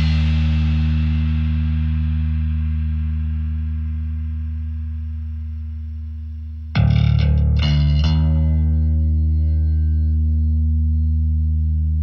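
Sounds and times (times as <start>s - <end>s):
cymbal wash: 0.0s - 7.2s
distorted guitar and bass chord: 0.0s - 12.0s.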